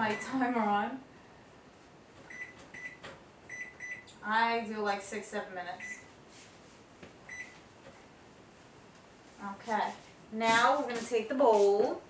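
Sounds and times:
microwave keypad beeps: 2.3s - 4.1s, 5.8s - 6.1s, 7.3s - 7.6s.

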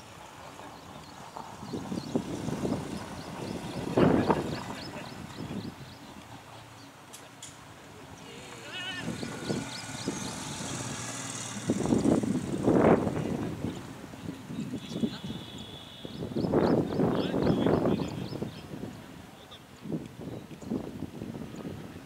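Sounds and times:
bird chirping: 0.6s - 7.0s, 8.1s - 12.1s, 13.7s - 18.7s
cricket players calling out: 8.2s - 9.6s.

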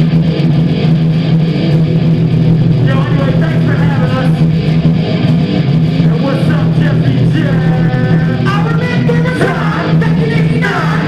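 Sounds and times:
distorted electric guitar: 0.0s - 11.0s
heavy low drone: 0.0s - 11.0s
live band playing loud: 0.0s - 11.0s.

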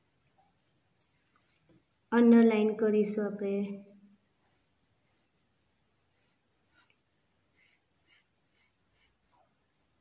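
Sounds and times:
pen scratching on paper: 4.4s - 9.5s.

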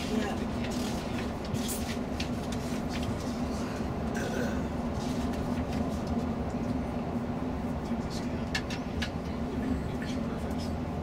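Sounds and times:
coach engine and road drone: 0.0s - 11.0s.

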